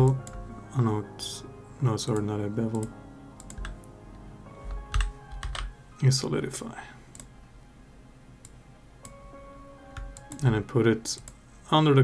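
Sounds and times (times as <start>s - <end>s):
soft background music: 0.0s - 12.0s
computer keyboard keystrokes: 2.1s - 3.8s, 4.6s - 5.7s, 10.0s - 10.5s.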